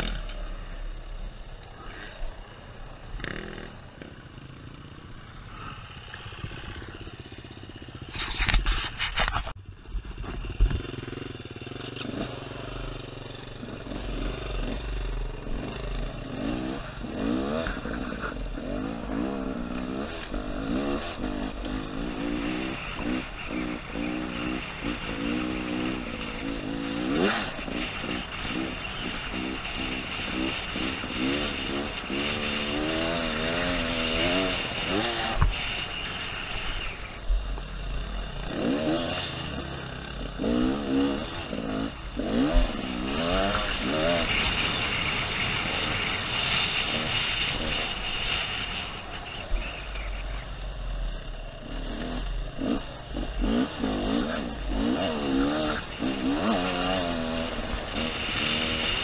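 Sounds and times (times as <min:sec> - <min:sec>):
motorcycle engine accelerating: 0:00.0 - 0:59.0
loud rush of noise: 0:18.9 - 0:59.0.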